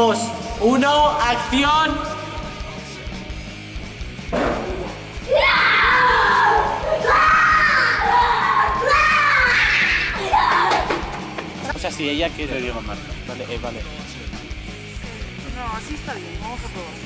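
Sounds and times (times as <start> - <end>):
background music: 0.0 - 17.0
person screaming: 5.3 - 10.8.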